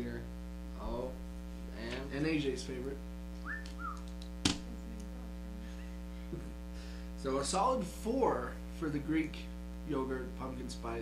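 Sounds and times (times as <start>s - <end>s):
person whistling: 3.4s - 4.1s.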